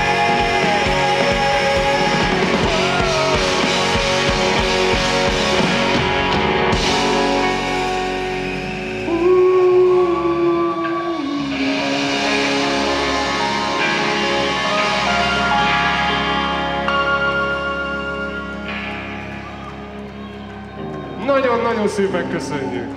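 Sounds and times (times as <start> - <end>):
electric guitar sustained notes: 0.0 - 22.9
keyboard sustained notes: 0.0 - 22.9.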